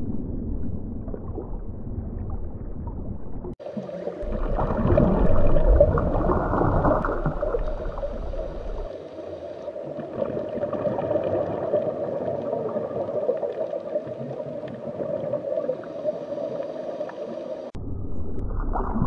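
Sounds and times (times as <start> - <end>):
deep low rumble: 0.0 - 3.6, 4.2 - 8.9, 17.8 - 19.0
underwater moving water: 0.0 - 19.0.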